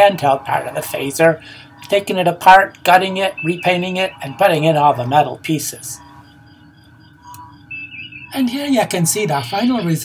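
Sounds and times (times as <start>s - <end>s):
electronic humming tones: 0.0s - 10.0s
soft electronic beeps: 0.0s - 10.0s.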